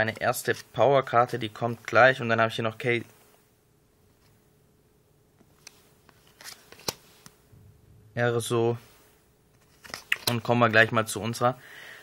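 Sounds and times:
cards sliding and rustling: 5.4s - 7.4s, 9.5s - 10.5s.

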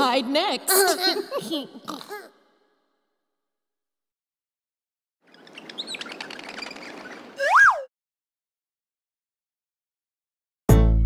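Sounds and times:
cartoon birds twittering: 5.3s - 7.9s
whistle sweeping up and down: 7.4s - 7.9s.

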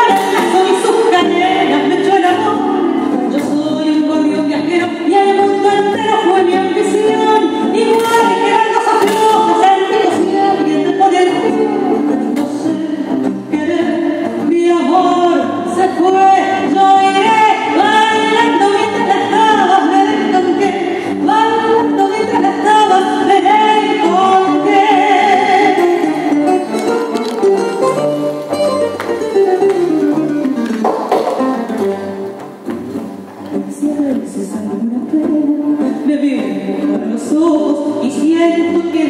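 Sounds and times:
woman singing into microphone: 0.0s - 27.7s, 33.5s - 39.0s
musical accompaniment: 0.0s - 39.0s.

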